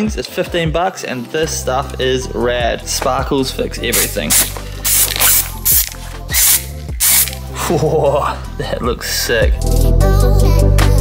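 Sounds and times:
background music: 0.0 - 11.0
spray can hissing: 3.9 - 7.5.

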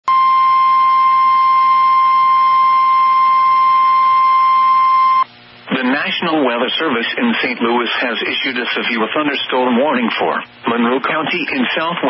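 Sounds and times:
loud steady alert beep: 0.1 - 5.3
radio hiss: 5.3 - 12.0.

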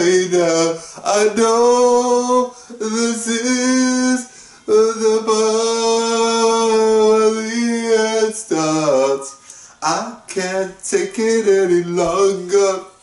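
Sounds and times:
man singing unaccompanied: 0.0 - 13.0.

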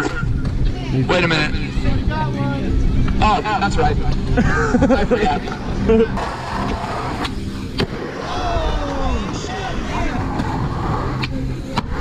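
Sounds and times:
skateboard wheels rolling on concrete: 5.0 - 12.0.

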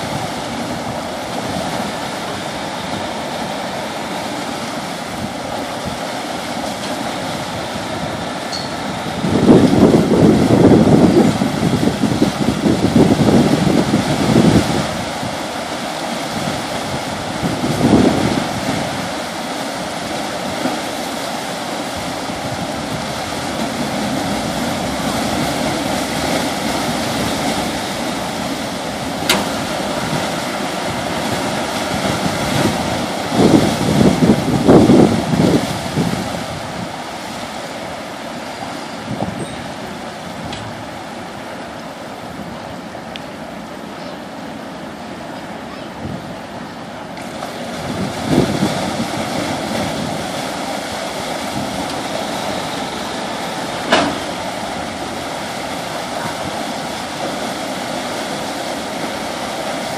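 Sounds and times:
water rushing from propeller wash: 0.0 - 59.9.

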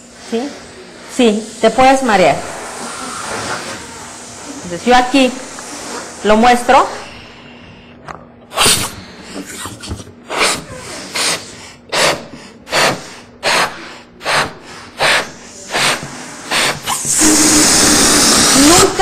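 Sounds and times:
air rushing out of balloon: 0.0 - 7.5, 8.5 - 19.0
person blowing up balloon: 2.3 - 4.7, 8.5 - 19.0.

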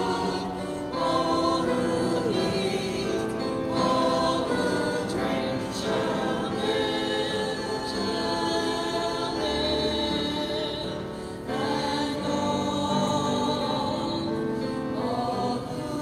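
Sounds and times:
choir singing a hymn: 0.0 - 16.0.

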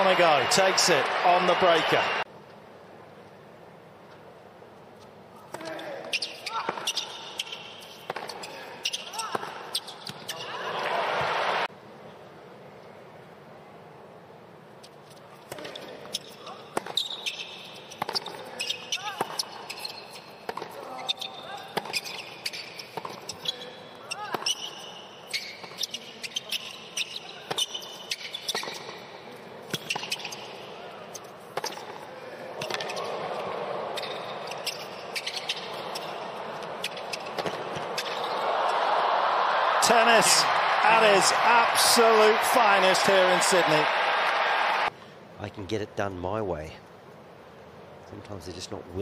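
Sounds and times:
crowd cheering and applause: 0.0 - 2.3, 10.6 - 11.7, 38.2 - 44.9
shoe squeaks on court: 5.8 - 10.6, 14.8 - 29.0, 29.7 - 32.0, 34.0 - 36.2, 36.8 - 38.4.

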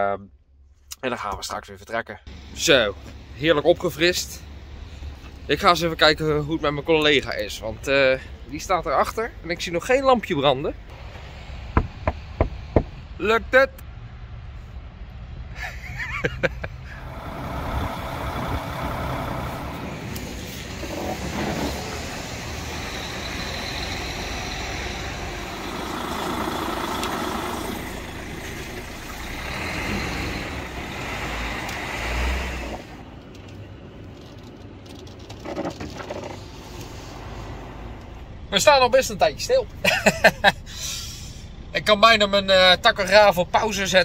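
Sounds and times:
diesel truck engine rumble: 2.3 - 44.0.

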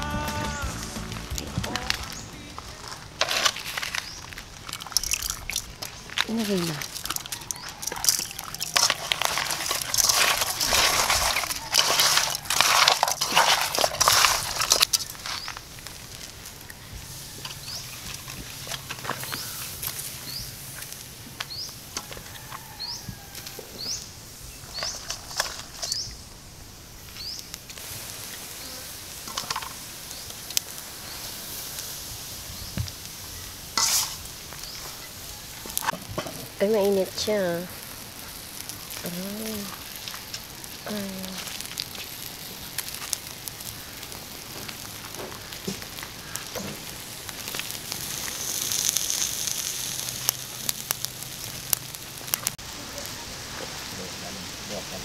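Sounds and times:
hands rustling and scraping fish: 0.9 - 15.7.

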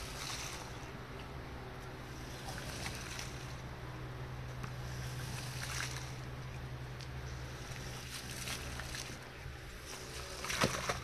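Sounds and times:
steady low hum: 0.0 - 11.0
scraper pushing water off rug: 2.0 - 3.6, 4.7 - 6.3, 7.4 - 11.0.

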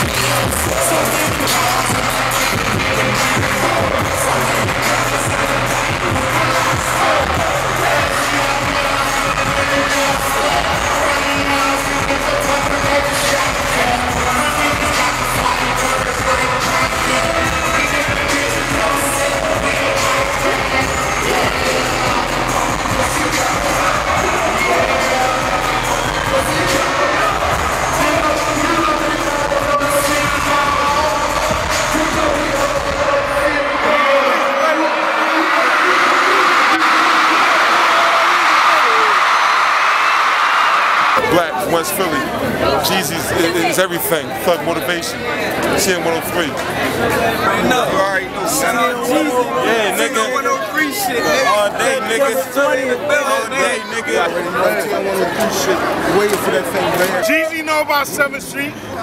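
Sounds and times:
bass-heavy hip-hop beat: 0.0 - 33.9
rapping vocals: 0.0 - 38.1, 41.2 - 45.1.

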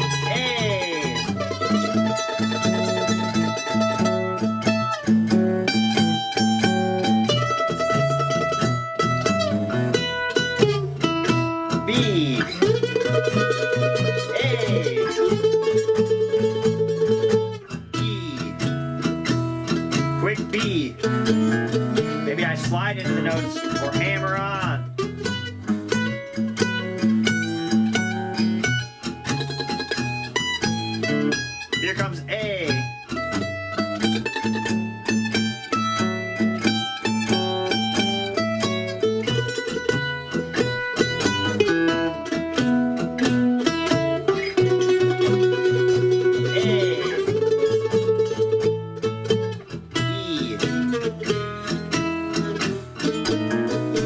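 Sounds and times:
backing track with bass: 0.0 - 54.0
mandolin picking blues solo: 0.0 - 54.0.

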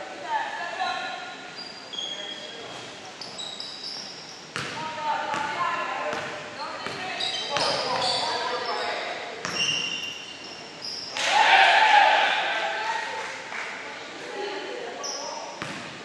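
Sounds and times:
sneaker squeaks: 1.4 - 11.2, 15.0 - 16.0.

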